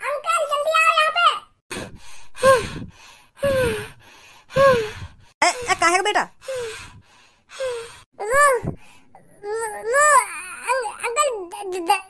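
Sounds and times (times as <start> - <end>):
person gasping breathily: 1.7 - 5.4, 6.4 - 8.1.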